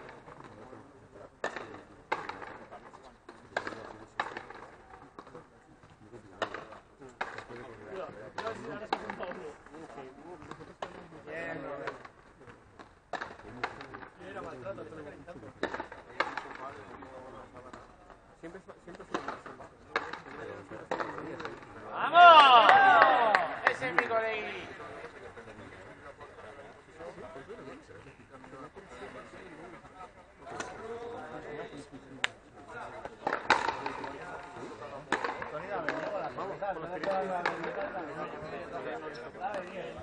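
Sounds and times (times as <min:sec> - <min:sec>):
ball struck by rackets: 0:01.4 - 0:02.6, 0:03.3 - 0:05.3, 0:06.4 - 0:07.7, 0:08.3 - 0:09.4, 0:12.8 - 0:14.2, 0:15.6 - 0:17.1, 0:19.0 - 0:21.7, 0:33.0 - 0:36.2, 0:37.0 - 0:37.9
voices talking: 0:20.0 - 0:27.8.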